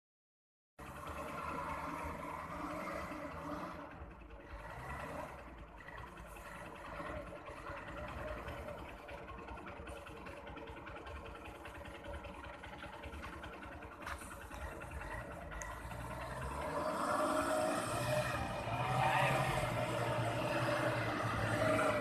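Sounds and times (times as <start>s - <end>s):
distant truck engine rumble: 0.8s - 22.0s.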